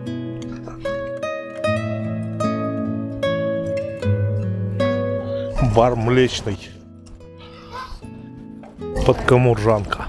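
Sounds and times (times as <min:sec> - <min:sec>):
background music with held notes: 0:00.0 - 0:10.0
person speaking: 0:05.4 - 0:06.9.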